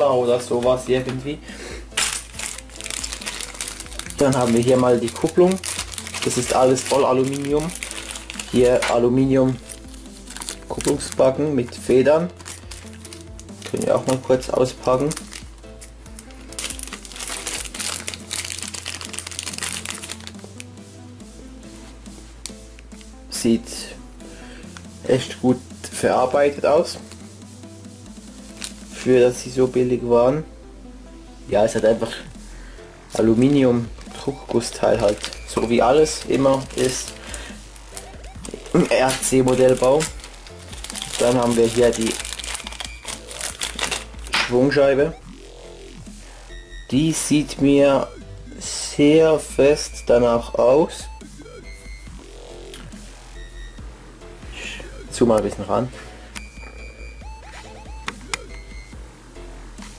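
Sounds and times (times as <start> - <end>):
background music: 0.0 - 59.9
plastic bag crinkling: 1.9 - 15.5, 16.1 - 20.7, 28.5 - 29.0, 33.4 - 44.8.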